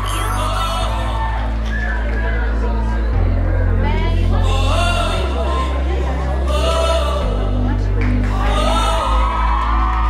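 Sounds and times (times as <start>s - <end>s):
person singing: 0.0s - 1.7s, 3.8s - 9.9s
pop song over sound system: 0.0s - 10.0s
sustained deep bass: 0.0s - 10.0s.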